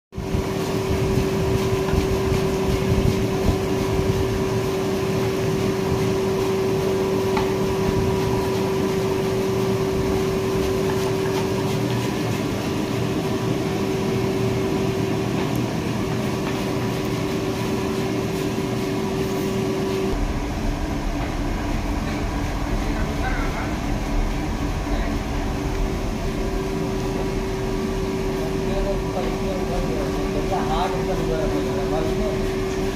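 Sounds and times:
machine hum: 0:00.2 - 0:32.9
deep rumble: 0:20.1 - 0:30.4.

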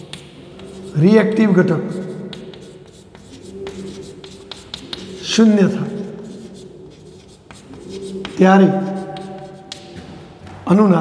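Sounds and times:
chalk scratching on blackboard: 0:00.0 - 0:10.2
chalk taps: 0:00.0 - 0:10.6.

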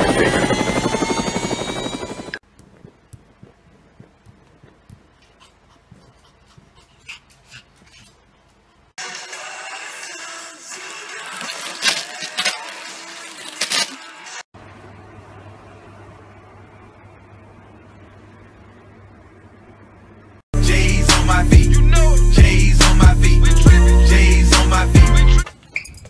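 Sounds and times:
toy helicopter rotor motor whining: 0:00.0 - 0:02.4
rustling with sharp crackles: 0:02.4 - 0:08.9.

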